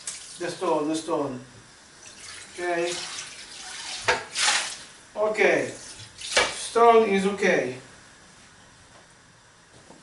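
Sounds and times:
pan being washed: 2.0s - 4.9s, 5.6s - 6.7s
water splashing: 2.2s - 4.9s.

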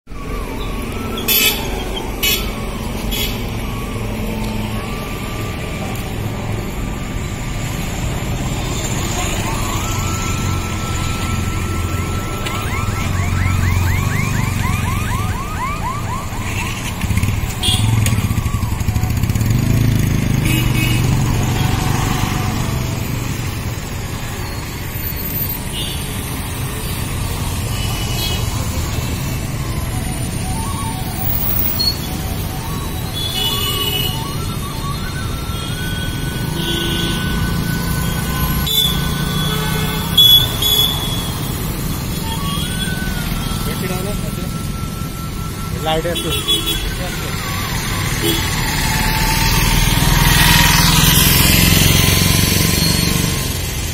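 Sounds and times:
rising electronic chirps: 0.1s - 20.3s, 28.5s - 53.5s
motorcycles passing: 0.2s - 25.3s, 26.2s - 53.9s
cars passing: 0.2s - 53.9s.

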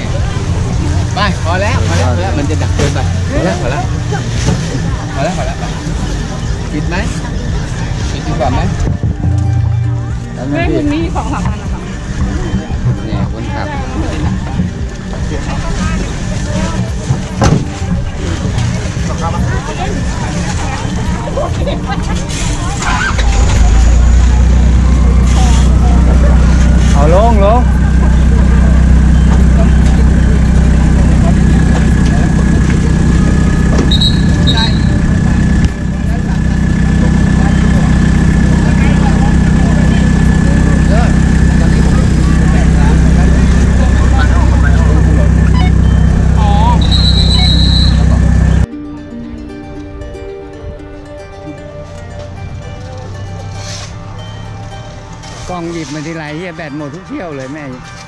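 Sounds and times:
truck engine rumbling: 0.0s - 58.0s.

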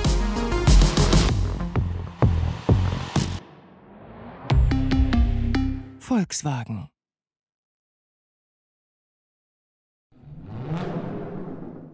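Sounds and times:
car engine revving effect: 2.2s - 4.9s.

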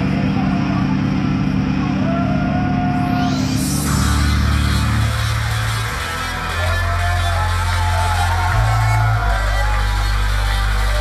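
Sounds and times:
heavy bass notes: 0.0s - 11.0s.

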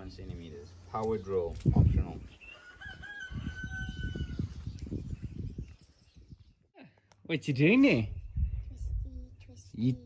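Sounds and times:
rooster crowing: 2.5s - 4.5s.

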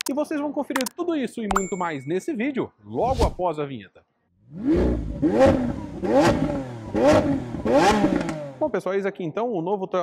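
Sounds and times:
car engine revving in blips: 4.5s - 8.6s.

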